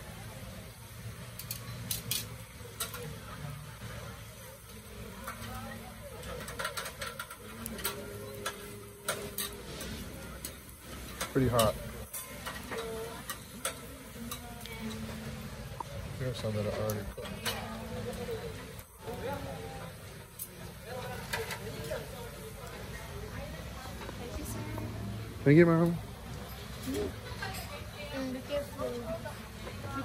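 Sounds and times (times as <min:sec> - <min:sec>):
people talking in background: 0:00.0 - 0:30.0
prawns sizzling on a grill: 0:00.0 - 0:30.0
sharp crackles and pops: 0:01.2 - 0:24.9.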